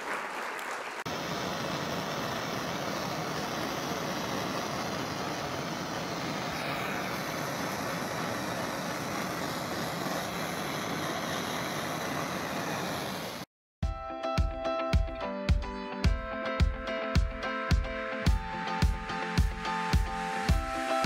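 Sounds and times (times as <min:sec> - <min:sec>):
torch flame hissing: 0:01.1 - 0:13.5
music: 0:13.8 - 0:21.0.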